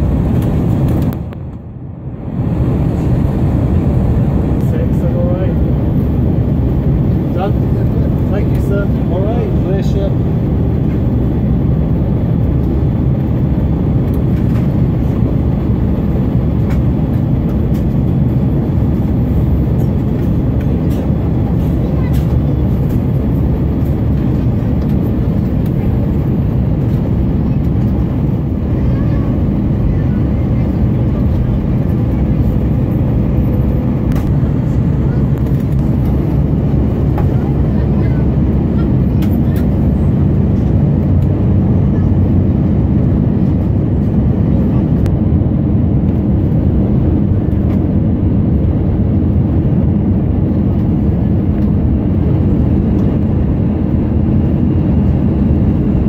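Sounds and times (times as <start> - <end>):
airliner cabin engine rumble: 0.0 - 56.0.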